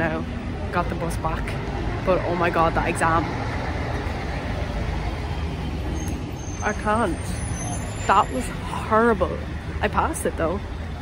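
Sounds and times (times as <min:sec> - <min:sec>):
road traffic rumble: 0:00.0 - 0:11.0
vehicle engines running: 0:00.0 - 0:11.0.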